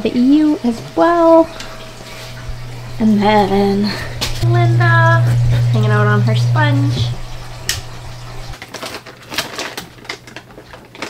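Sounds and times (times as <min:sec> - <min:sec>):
aquarium equipment hum: 0:00.0 - 0:08.6.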